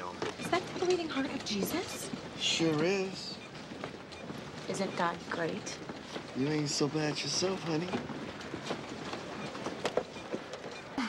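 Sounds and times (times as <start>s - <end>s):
rattling rolling clatter: 0.0s - 11.0s
steady noise: 0.0s - 11.0s.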